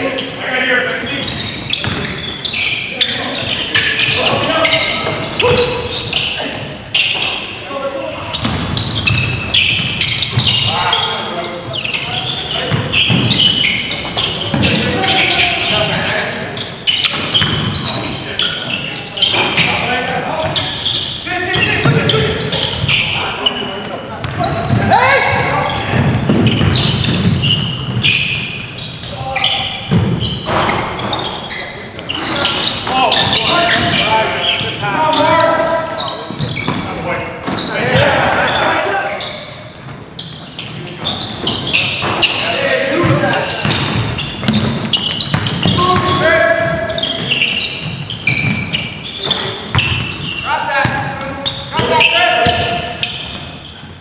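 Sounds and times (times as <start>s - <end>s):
players shouting: 32.1s - 39.4s.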